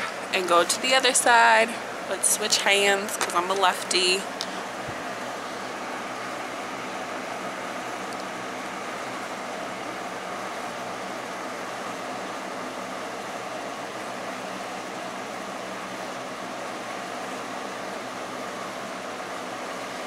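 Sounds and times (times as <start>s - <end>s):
electric fan running: 0.0s - 20.0s.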